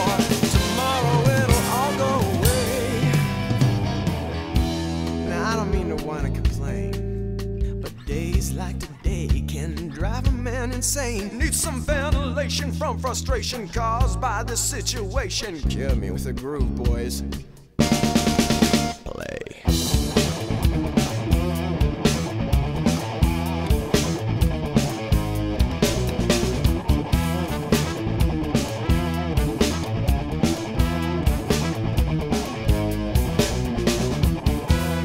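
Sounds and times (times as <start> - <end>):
held chord: 0.0 - 5.3
rock band with guitar bass and drums: 0.0 - 15.3, 17.2 - 19.0, 19.6 - 35.0.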